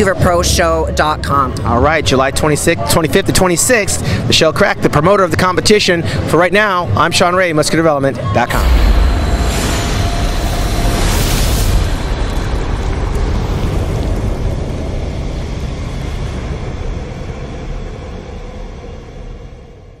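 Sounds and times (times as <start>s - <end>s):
whoosh: 8.5s - 15.0s
deep rumbling boom: 8.5s - 15.6s.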